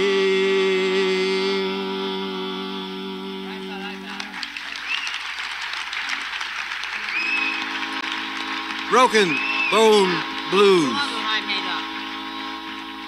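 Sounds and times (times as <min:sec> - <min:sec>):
harmonium drone: 0:00.0 - 0:04.4, 0:07.0 - 0:13.0
audience applauding: 0:04.1 - 0:13.0
voices calling out: 0:08.9 - 0:12.6.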